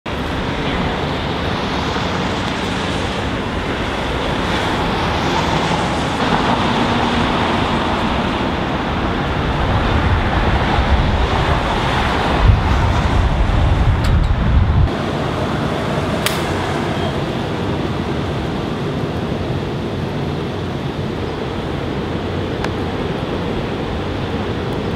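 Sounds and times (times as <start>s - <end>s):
street traffic: 0.1s - 24.9s
wind buffeting microphone: 0.1s - 24.9s
heavy low rumble: 8.9s - 19.2s.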